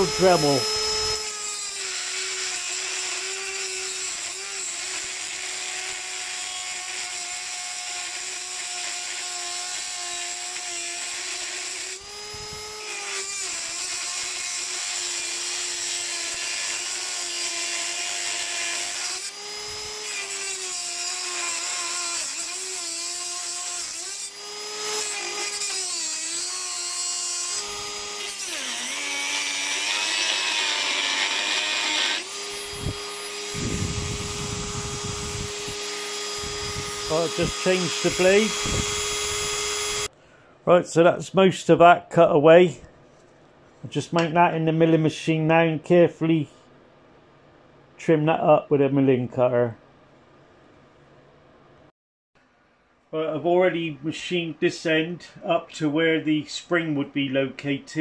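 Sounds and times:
rotary tool cutting metal: 0.0 - 40.1.

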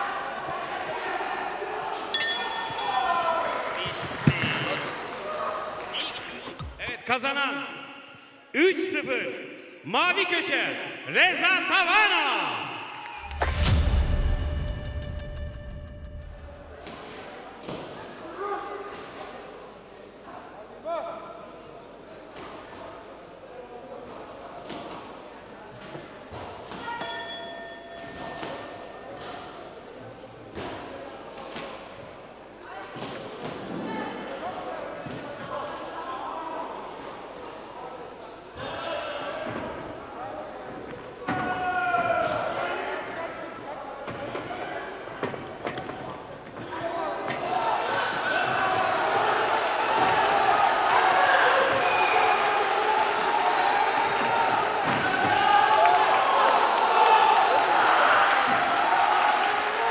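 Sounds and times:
crowd noise: 0.0 - 59.9
ring bell: 2.1 - 3.0, 27.0 - 29.0.

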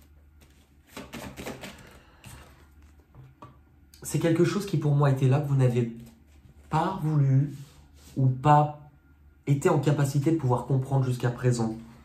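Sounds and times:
cards being shuffled: 0.0 - 3.4.

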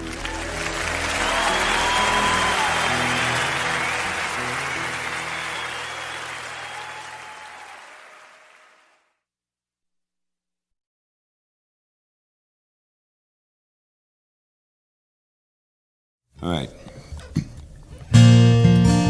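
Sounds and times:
audience applauding: 0.0 - 9.1.

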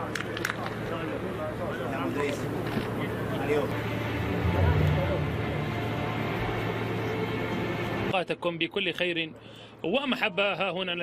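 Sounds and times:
steady background hum: 0.0 - 9.8
indistinct voices: 3.6 - 7.0.

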